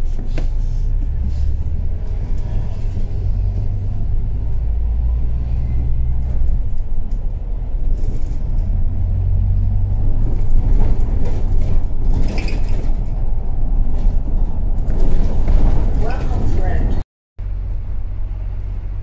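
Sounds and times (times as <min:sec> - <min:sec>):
bus engine low rumble: 0:00.0 - 0:19.0.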